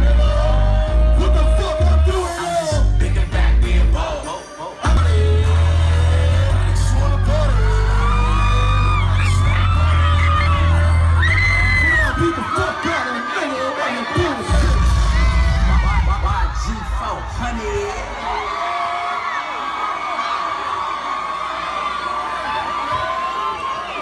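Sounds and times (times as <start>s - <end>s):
hip-hop music with heavy bass: 0.0s - 18.8s
crowd shouting and singing: 0.0s - 24.0s.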